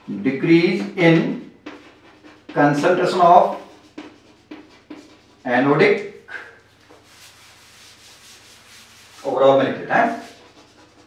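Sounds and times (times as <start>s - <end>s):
man talking: 0.0s - 1.5s, 2.5s - 3.7s, 5.4s - 6.1s, 9.2s - 10.2s
duster scratching on blackboard: 0.3s - 6.1s, 6.7s - 11.0s.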